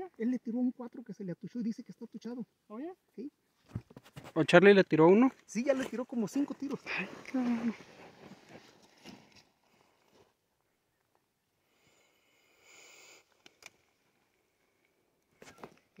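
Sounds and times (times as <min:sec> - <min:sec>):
faint rustling: 0:05.2 - 0:10.4
faint hiss: 0:11.6 - 0:13.8.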